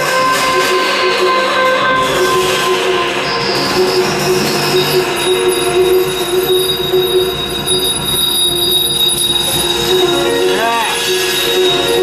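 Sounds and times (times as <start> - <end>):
jazz band droning notes: 0.0 - 12.0
thin high steady tone: 0.3 - 12.0.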